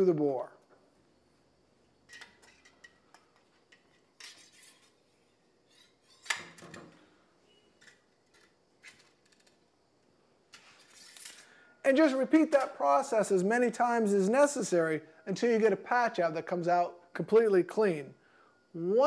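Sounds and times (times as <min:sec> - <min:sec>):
metallic clicks and scrapes: 0:02.1 - 0:05.1, 0:10.5 - 0:11.5.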